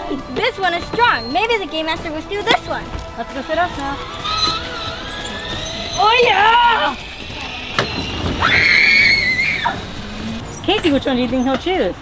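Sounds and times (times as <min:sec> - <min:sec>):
child squealing: 0:03.5 - 0:10.0.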